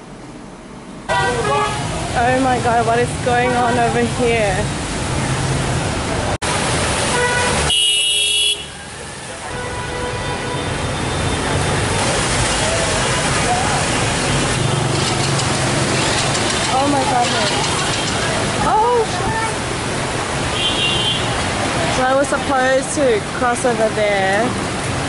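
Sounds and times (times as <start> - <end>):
car horn honking: 1.1 - 1.9, 7.1 - 8.8, 9.4 - 11.4, 20.6 - 21.4
engines driving through water: 1.8 - 7.8, 10.7 - 20.6.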